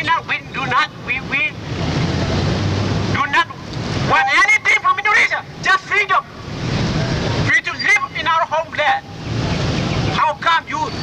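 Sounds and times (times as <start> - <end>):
man shouting through megaphone: 0.0 - 1.6, 3.1 - 6.4, 7.5 - 9.1, 10.2 - 11.0
street traffic rumble: 0.0 - 11.0.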